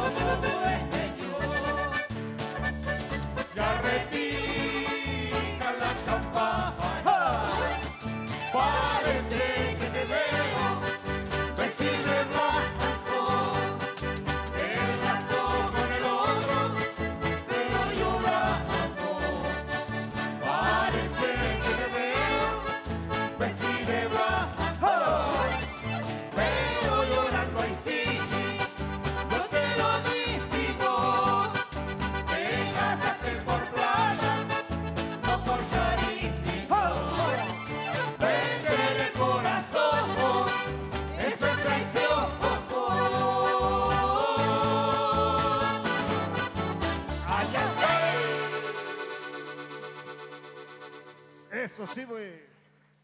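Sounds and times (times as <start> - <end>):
voices singing along: 0.0 - 2.1, 3.6 - 7.8, 8.5 - 19.7, 20.4 - 22.8, 23.4 - 31.7, 32.3 - 46.3, 47.2 - 49.2
strummed guitars: 0.0 - 51.6
accordion: 0.0 - 52.6.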